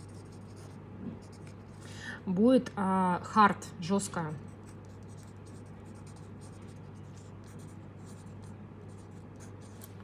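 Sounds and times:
pen scratching on paper: 0.0 - 1.7, 4.6 - 9.9
steady low hum: 0.0 - 10.0.

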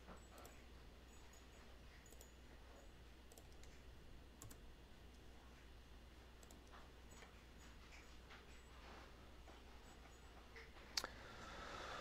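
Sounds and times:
low steady hum: 0.0 - 12.0
faint computer clicks: 4.4 - 5.2.

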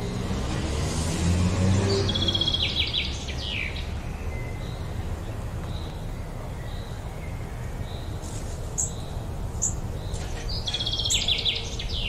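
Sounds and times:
bird chirping: 1.8 - 12.0.

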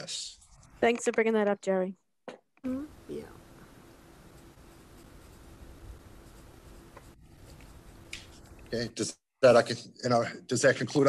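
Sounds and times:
faint steady hum: 2.6 - 11.0.

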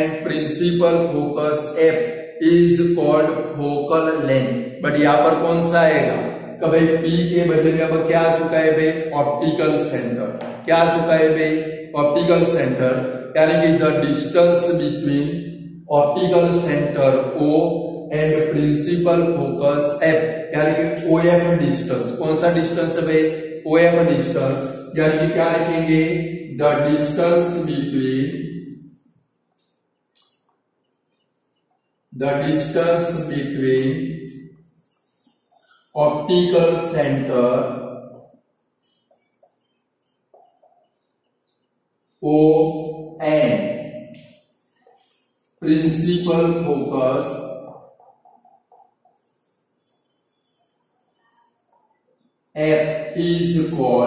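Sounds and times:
man speaking in drawn-out tones: 0.0 - 28.5, 32.2 - 34.2, 36.0 - 37.8, 42.2 - 44.2, 45.6 - 47.9
man calling out long vowel: 42.2 - 43.9.

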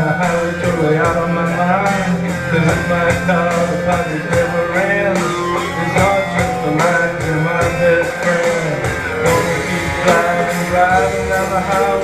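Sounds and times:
live rock guitar over beat: 0.0 - 12.0.

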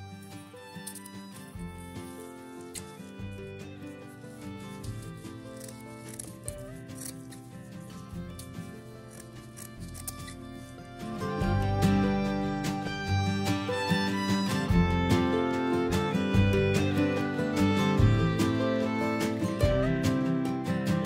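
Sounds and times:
instrumental music: 0.0 - 21.0
scissors snipping rope: 0.2 - 10.9.

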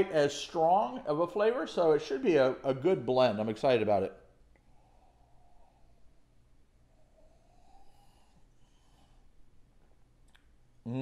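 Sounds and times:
soft breaths: 4.3 - 10.1.

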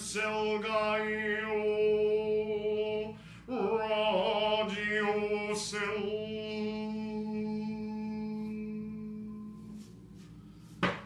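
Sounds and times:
man chanting a sustained note: 0.0 - 10.7.

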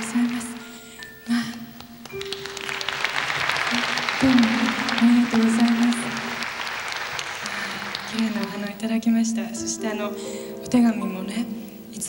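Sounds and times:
audience applauding: 0.0 - 8.9.

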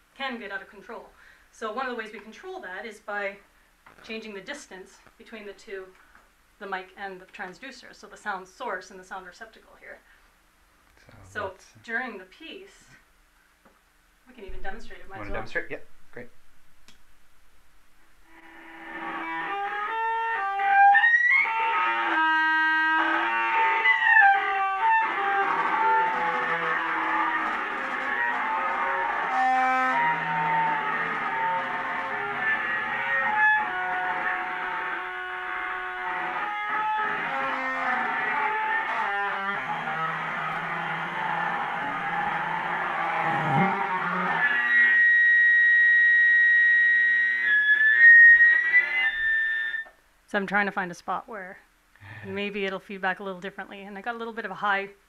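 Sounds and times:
buzzing acoustic feedback drone: 14.3 - 49.9.

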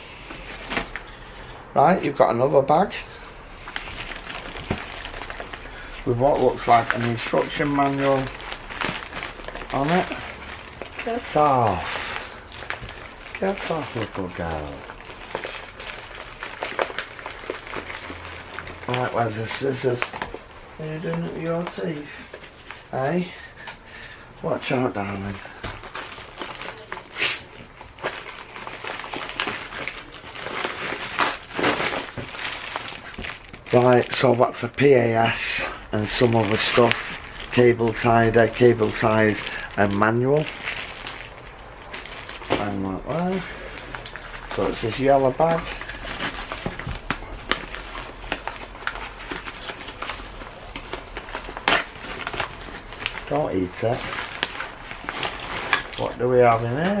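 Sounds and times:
plastic bag crinkling: 3.0 - 23.7, 24.4 - 57.0.

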